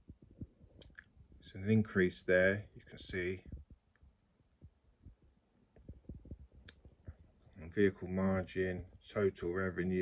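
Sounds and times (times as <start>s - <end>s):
faint low thumps: 2.7s - 7.6s.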